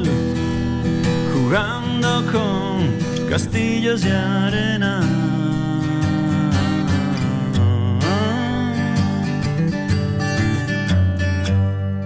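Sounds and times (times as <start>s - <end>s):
person singing: 0.0s - 9.9s
acoustic guitar strumming: 0.0s - 12.0s.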